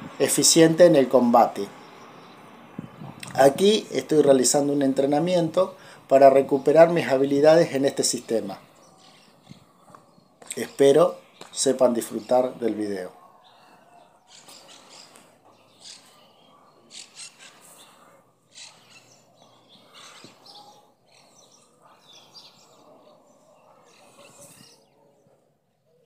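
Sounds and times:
birds chirping: 0.0 - 26.0.

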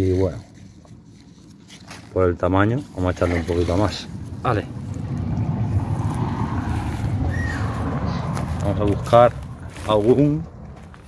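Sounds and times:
wind buffeting microphone: 3.8 - 11.0.

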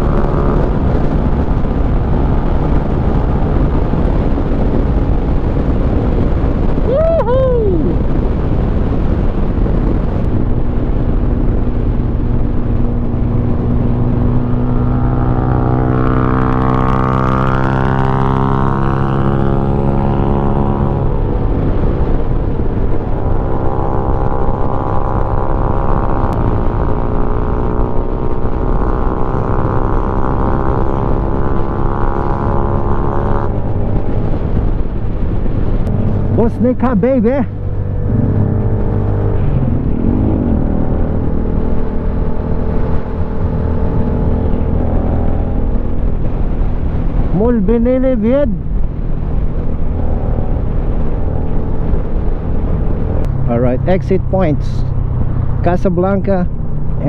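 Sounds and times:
motorcycle engine drone: 0.0 - 57.0
wind and road noise: 0.0 - 57.0.

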